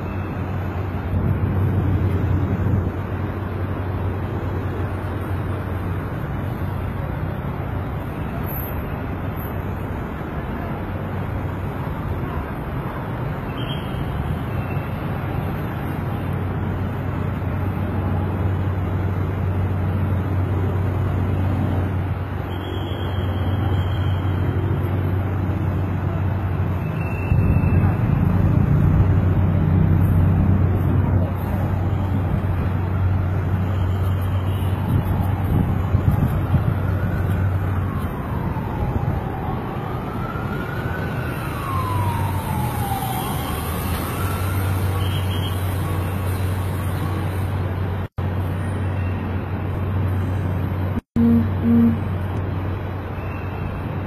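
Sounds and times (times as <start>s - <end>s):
city traffic hum: 0.0s - 54.0s
emergency siren wailing: 20.0s - 47.4s, 51.2s - 52.3s.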